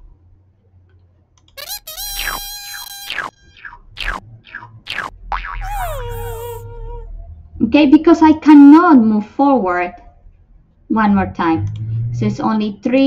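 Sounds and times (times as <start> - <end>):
sliding boing tones: 3.2 - 7.1
descending fail tone: 5.6 - 7.1.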